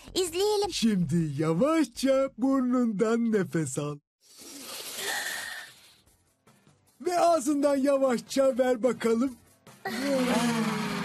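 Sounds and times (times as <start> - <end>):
breath drawn in through nose: 4.2 - 6.1.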